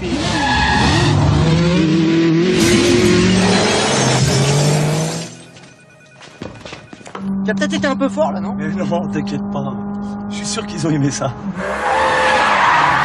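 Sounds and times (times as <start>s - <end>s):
car engine revving: 0.0s - 5.5s, 7.2s - 13.0s.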